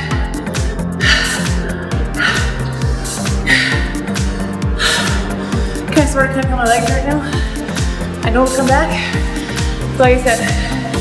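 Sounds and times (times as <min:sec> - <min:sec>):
woman gasping breaths: 0:00.0 - 0:05.9, 0:08.9 - 0:11.0
workout music with drum beat: 0:00.0 - 0:11.0.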